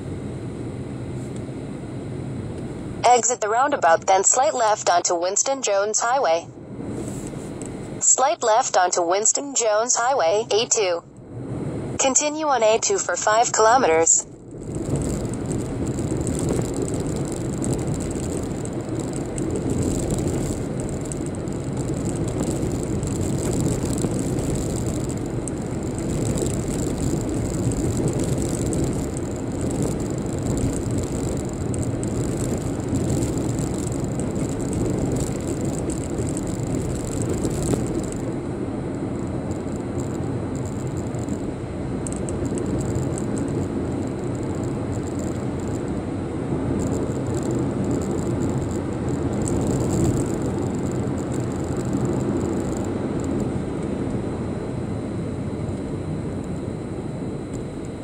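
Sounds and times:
faint high whine: 0.0s - 58.0s
car road and engine noise: 13.6s - 58.0s.

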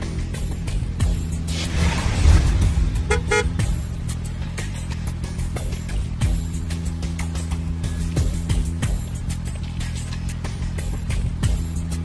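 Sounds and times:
background music: 0.0s - 12.0s
car horn toots: 3.0s - 3.7s.

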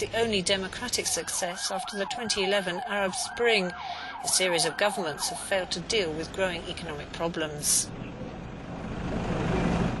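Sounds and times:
street noise: 0.0s - 10.0s.

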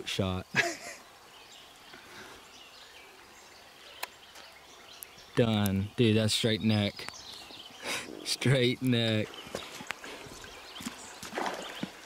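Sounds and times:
footsteps on wet stones: 8.7s - 12.0s.

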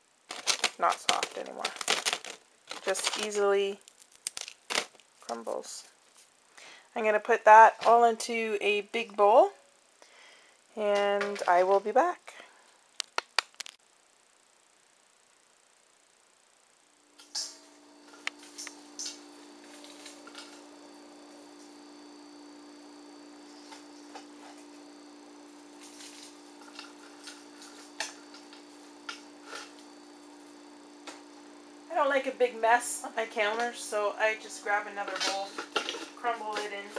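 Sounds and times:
crumbling dry bouillon: 0.3s - 5.4s
steady low hum: 13.7s - 36.9s.

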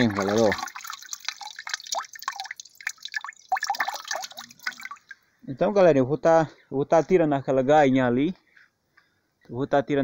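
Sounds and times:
water dripping into a bucket: 0.0s - 5.3s.

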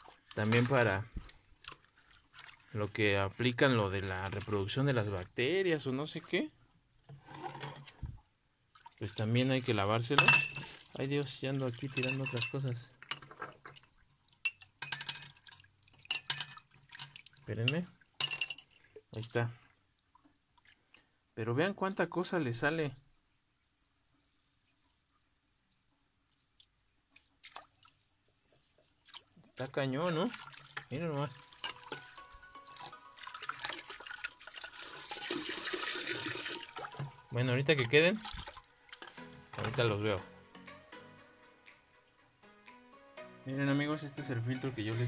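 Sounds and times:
hose water splashing: 0.0s - 5.3s, 5.9s - 14.1s, 26.4s - 39.9s
plastic parts clinking in water: 10.1s - 11.1s, 11.8s - 19.1s, 30.2s - 34.4s.

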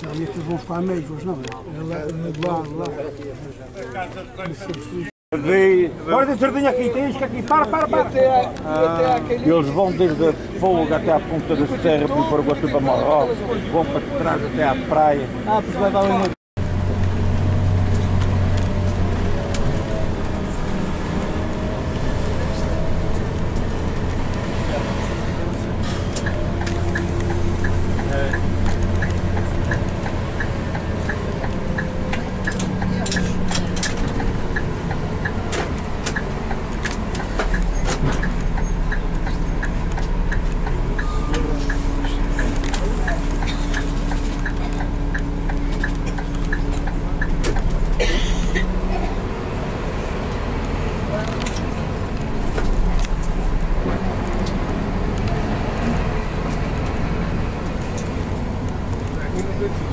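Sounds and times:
bus engine and road noise: 0.0s - 59.9s
light regular ticking: 26.1s - 48.0s.

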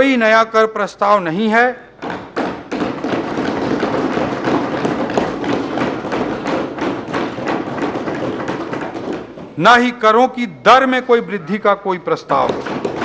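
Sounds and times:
hands thumping desks: 1.9s - 13.0s.

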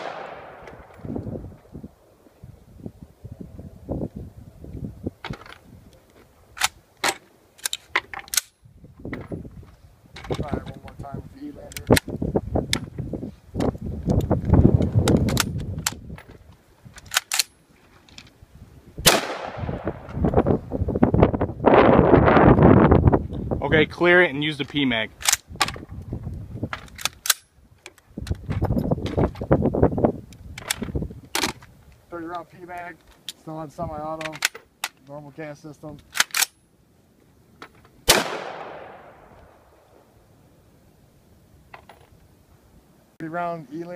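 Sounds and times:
rifle shots: 0.0s - 1.0s, 19.0s - 20.1s, 38.0s - 39.7s
rustling handling noise: 14.8s - 18.5s
rifle charging metallic clacks: 36.1s - 36.6s.

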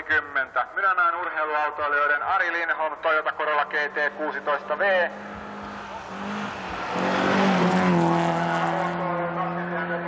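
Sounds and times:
tyres on loose gravel: 1.6s - 9.5s
rally car engine revving: 3.4s - 10.0s.

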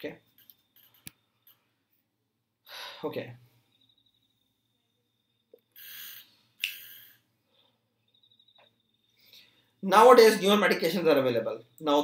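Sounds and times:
breaths into a microphone: 2.7s - 3.1s.

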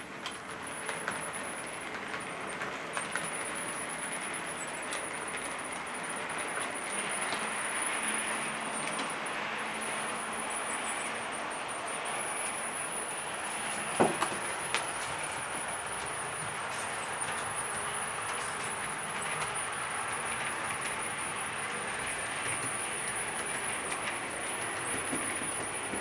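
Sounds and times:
high motor whine: 0.0s - 26.0s
model train wheels rumbling: 0.0s - 26.0s.

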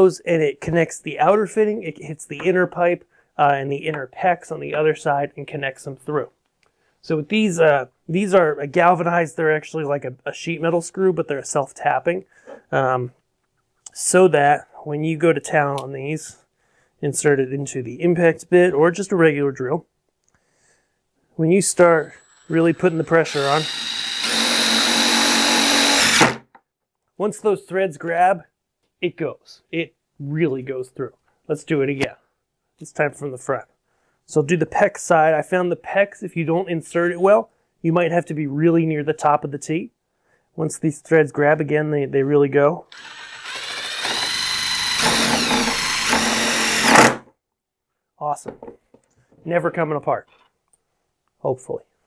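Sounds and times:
impact drill driving screw: 22.0s - 26.4s, 42.9s - 47.2s.

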